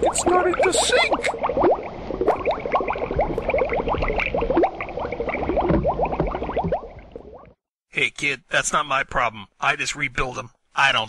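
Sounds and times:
bubbling water blips: 0:00.0 - 0:07.6.

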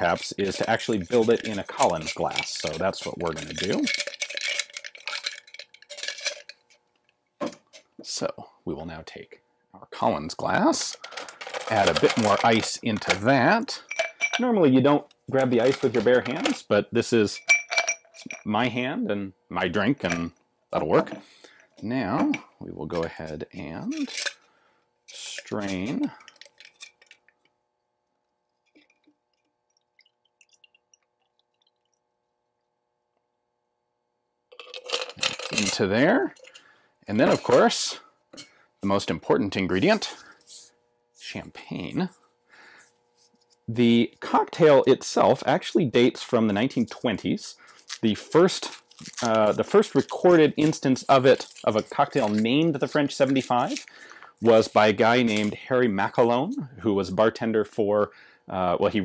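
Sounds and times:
ice clinking in metal tin: 0:00.0 - 0:06.7, 0:10.8 - 0:13.2, 0:34.5 - 0:37.8, 0:48.4 - 0:55.5
faint steady hum: 0:00.0 - 0:59.0
drips and ice ticks: 0:28.3 - 0:32.7.

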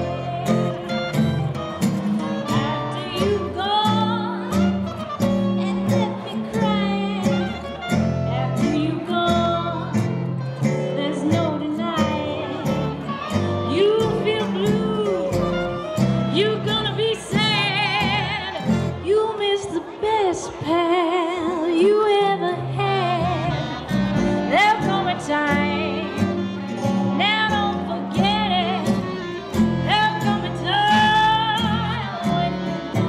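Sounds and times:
woman singing with vibrato: 0:00.0 - 0:01.4, 0:02.4 - 0:04.9, 0:05.5 - 0:07.6, 0:08.2 - 0:10.1, 0:10.7 - 0:26.4, 0:27.1 - 0:33.0
upright bass notes: 0:00.0 - 0:19.0, 0:22.8 - 0:33.0
acoustic guitars strumming: 0:00.0 - 0:19.1, 0:22.8 - 0:33.0.

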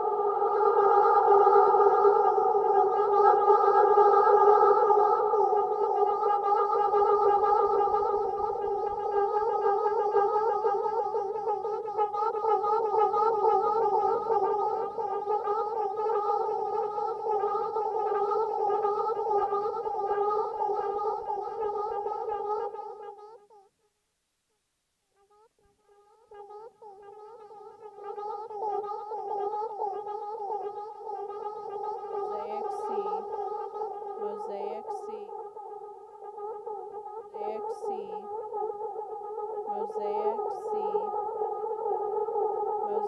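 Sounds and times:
chirping sped-up vocal fragments: 0:00.0 - 0:23.7, 0:26.4 - 0:43.0
warbling looped voice texture: 0:26.9 - 0:35.5, 0:37.1 - 0:38.4, 0:39.6 - 0:43.0.

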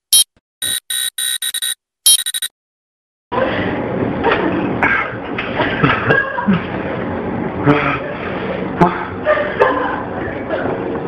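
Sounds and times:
electronic buzzer bursts: 0:00.0 - 0:02.5.

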